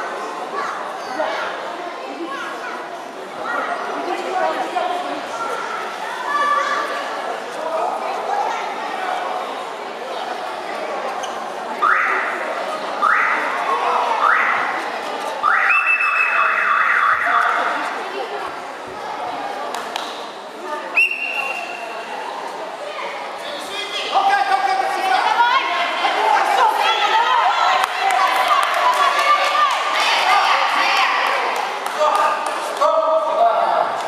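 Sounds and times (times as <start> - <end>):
young people chattering and calling: 0.0 - 34.0.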